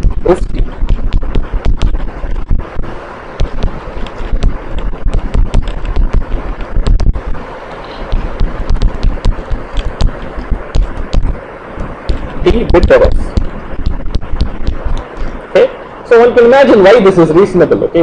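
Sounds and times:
pen tapping and scratching: 0:00.0 - 0:02.5, 0:03.4 - 0:15.4
low rumble and hiss: 0:00.0 - 0:18.0.

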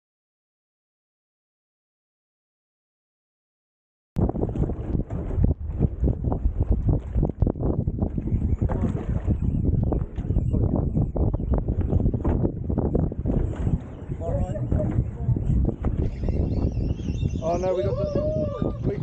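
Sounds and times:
wind buffeting microphone: 0:04.2 - 0:19.0.

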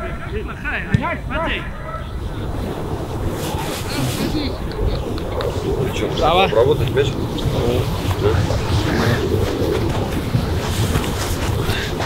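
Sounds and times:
faint voices: 0:00.0 - 0:12.0
wind buffeting microphone: 0:00.0 - 0:12.0.

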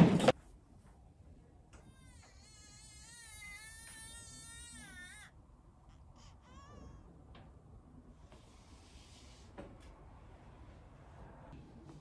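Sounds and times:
baby crying: 0:01.9 - 0:07.2.

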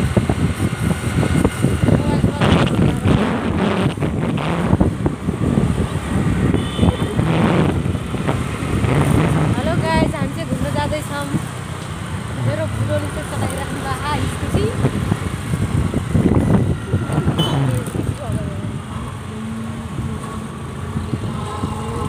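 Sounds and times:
scooter engine: 0:00.0 - 0:22.0
wind rush on microphone: 0:00.0 - 0:22.0
voices talking: 0:09.5 - 0:11.5, 0:12.3 - 0:15.1, 0:16.7 - 0:20.2.

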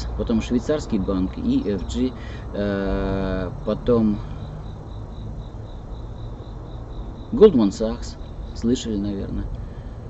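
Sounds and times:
cricket chirping: 0:00.0 - 0:10.0
low background rumble: 0:00.0 - 0:10.0.

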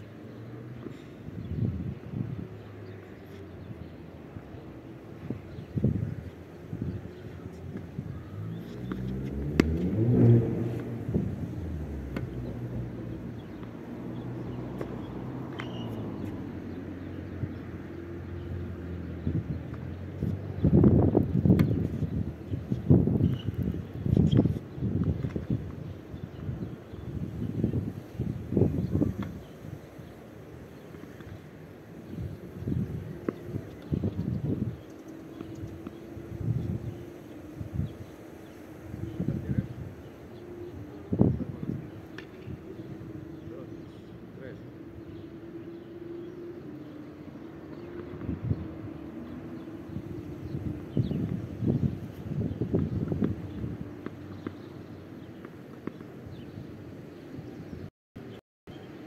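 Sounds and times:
wind buffeting microphone: 0:01.3 - 0:02.9, 0:03.5 - 0:55.4
car passing by: 0:08.3 - 0:19.1
tennis racket hitting ball: 0:08.7 - 0:10.0.

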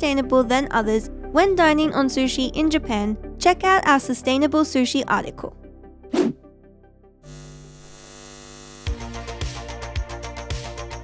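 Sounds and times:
electric buzzing hum: 0:07.2 - 0:08.9.

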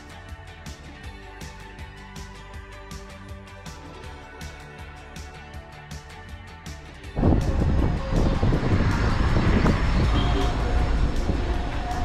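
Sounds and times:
soft music with light beat: 0:00.0 - 0:12.0
car road noise: 0:07.2 - 0:12.0
wind on microphone: 0:07.2 - 0:12.0.

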